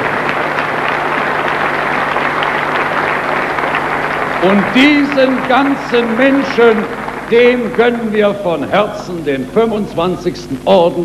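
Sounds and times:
audience applauding: 0.0 - 9.3
faint low hum: 0.0 - 11.0.

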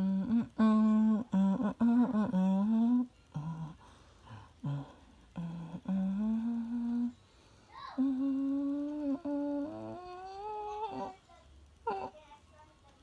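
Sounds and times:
person humming a tune: 0.0 - 11.2, 11.8 - 12.2.

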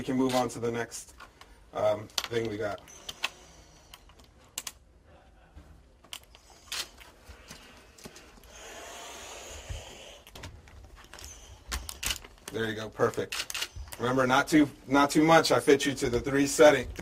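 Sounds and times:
steady oxygen hiss: 8.0 - 10.4.

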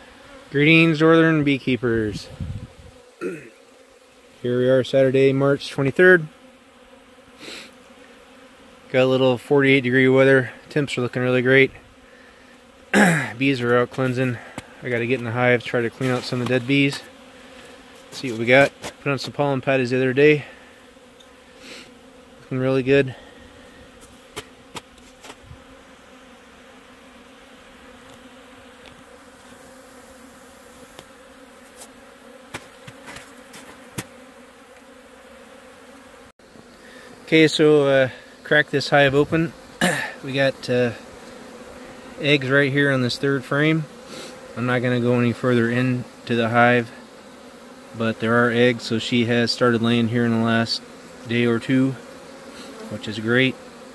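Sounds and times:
bees buzzing faintly: 0.0 - 53.9.

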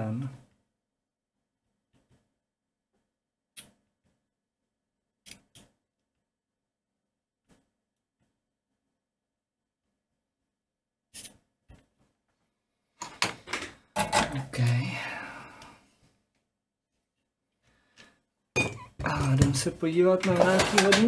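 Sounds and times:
person speaking: 14.0 - 15.8, 18.6 - 21.0
clatter of small knocks: 20.2 - 21.0.

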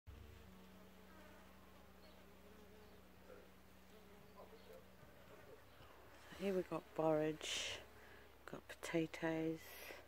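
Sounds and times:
bee buzzing: 0.1 - 10.0.

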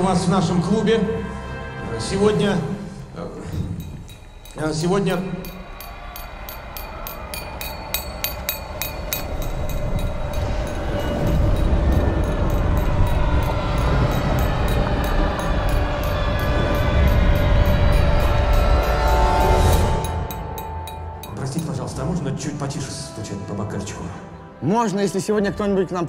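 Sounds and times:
fork tapping on wine glass: 3.5 - 21.8
music with low rumble: 6.8 - 23.4.

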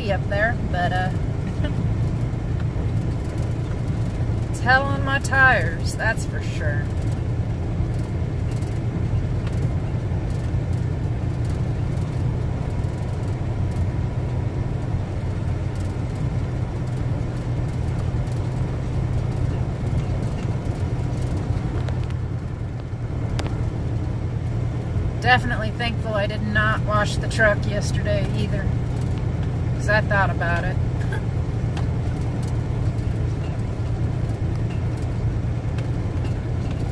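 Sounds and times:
diesel truck engine running: 0.0 - 36.9
tyres on dirt road: 0.0 - 36.9.

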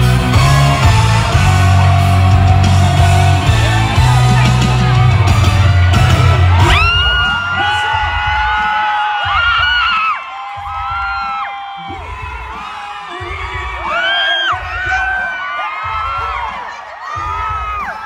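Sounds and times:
crowd screaming and whooping: 0.0 - 18.0
heavy bass beat: 0.0 - 18.0
live concert music over speakers: 0.0 - 18.0.

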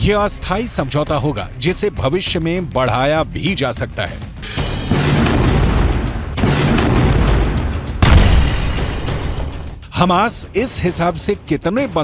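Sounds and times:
dramatic background music: 0.0 - 12.0
deep booming rumbles: 4.8 - 9.8.

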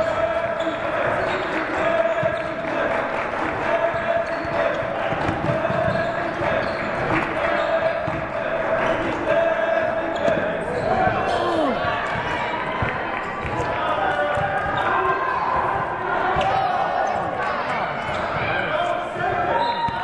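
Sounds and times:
indistinct voices: 0.0 - 12.2.

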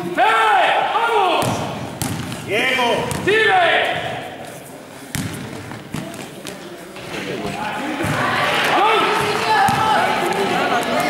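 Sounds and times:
basketball bouncing on court: 1.4 - 4.2, 5.1 - 6.6, 7.4 - 11.0
distant players shouting: 7.5 - 11.0.

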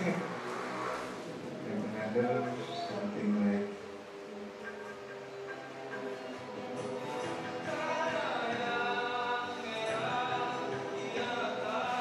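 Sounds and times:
rushing noise: 0.0 - 2.8.

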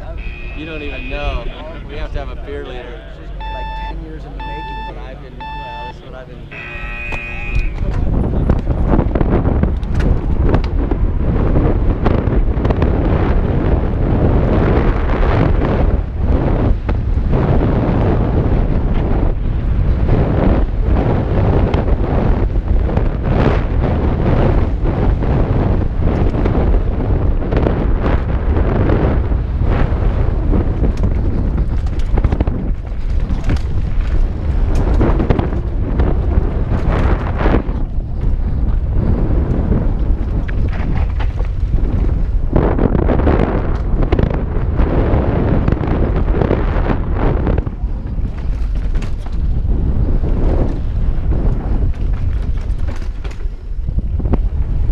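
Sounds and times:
wind buffeting microphone: 0.0 - 54.9
bike knocks and rattles: 7.1 - 18.1, 18.8 - 44.7, 47.4 - 54.9.

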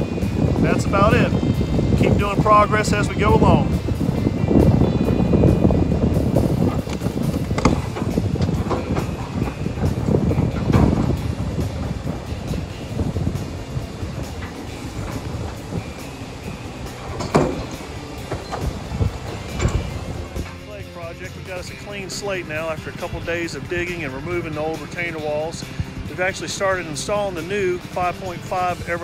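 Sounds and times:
heavy machinery rumbling: 0.0 - 29.0
metallic clanks: 6.4 - 21.0.

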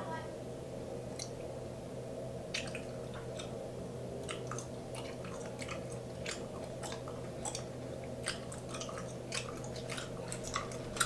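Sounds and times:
low background hum: 0.0 - 11.0
chewing bubblegum wet smacks: 2.5 - 3.6, 4.2 - 11.0.

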